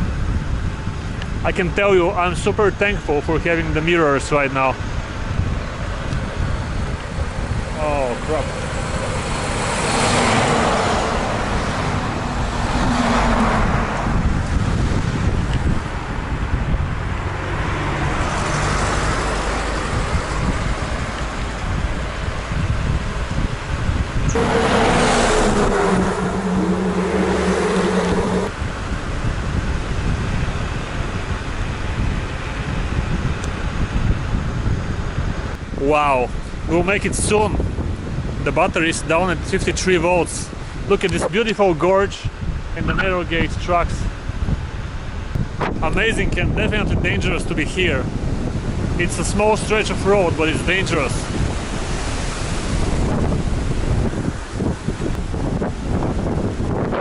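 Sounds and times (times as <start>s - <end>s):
wind and road noise: 0.0s - 57.0s
motor vehicles passing: 3.8s - 36.7s, 39.4s - 57.0s.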